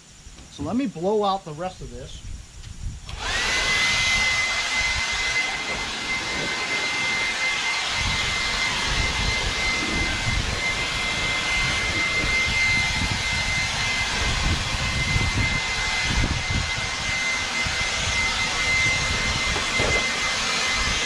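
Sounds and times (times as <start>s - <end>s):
leaf blower whining: 2.7s - 21.0s.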